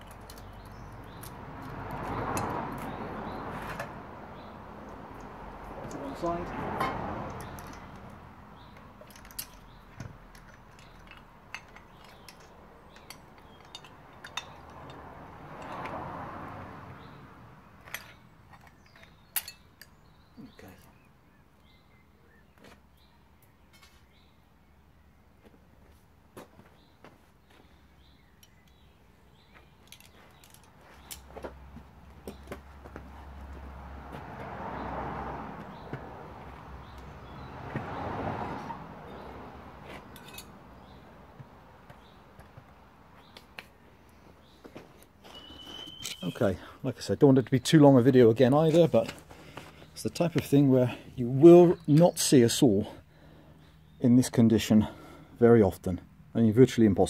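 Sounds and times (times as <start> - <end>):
light metallic clinks and taps: 6.8 - 15.0, 17.8 - 20.0, 39.9 - 40.6.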